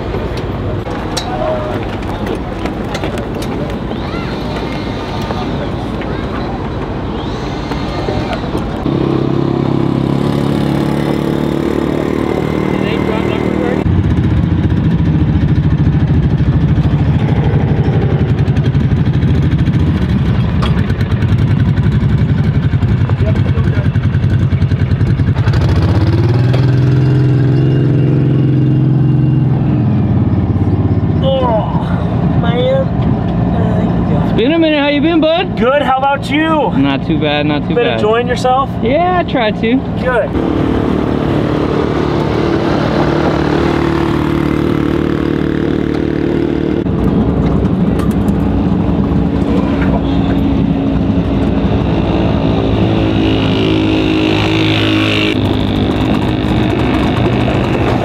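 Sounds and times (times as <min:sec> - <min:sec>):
vehicle engines idling: 0:00.0 - 0:58.0
voices in background: 0:03.4 - 0:08.8.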